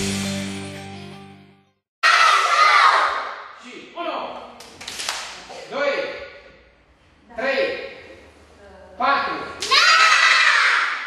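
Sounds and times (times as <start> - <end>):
children shouting in unison: 2.0 - 3.4, 9.6 - 11.0.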